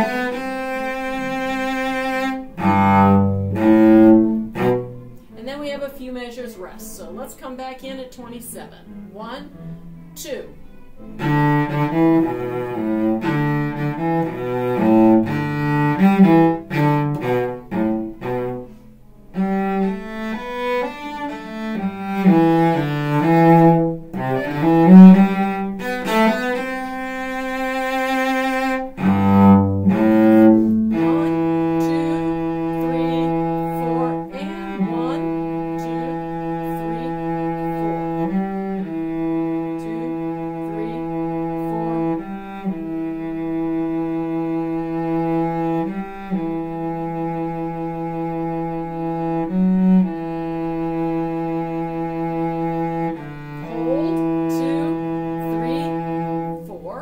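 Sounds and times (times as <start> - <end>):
solo cello playing slowly: 0.0 - 7.4, 8.6 - 57.0.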